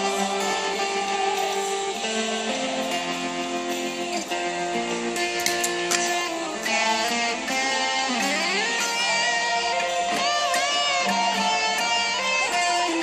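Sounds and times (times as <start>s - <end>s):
clean electric guitar chords: 0.0s - 13.0s.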